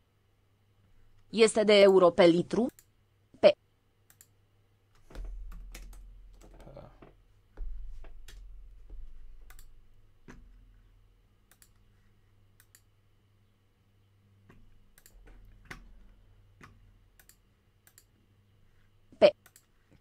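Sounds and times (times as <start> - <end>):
faint low hum: 0.0 - 20.0
mouse and keyboard clicks: 11.5 - 11.9.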